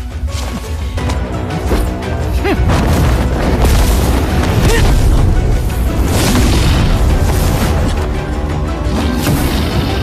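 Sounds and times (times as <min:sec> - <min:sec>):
dramatic orchestral music: 0:00.0 - 0:10.0.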